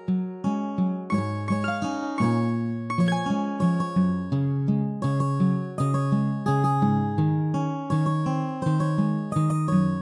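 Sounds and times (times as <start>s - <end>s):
plucked string instrumental music: 0.0s - 10.0s.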